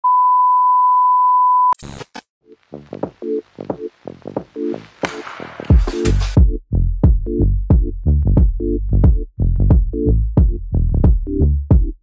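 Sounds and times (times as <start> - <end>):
glitchy static: 1.8 - 6.4.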